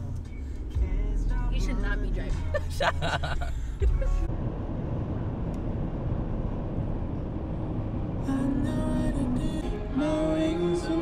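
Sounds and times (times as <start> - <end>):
car road noise rumble: 0.0 - 11.0.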